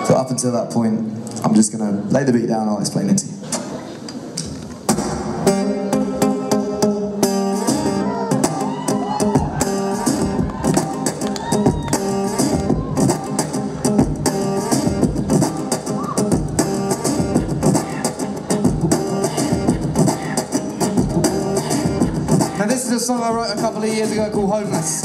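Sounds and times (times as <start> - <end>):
strummed guitar chords: 4.9 - 11.3.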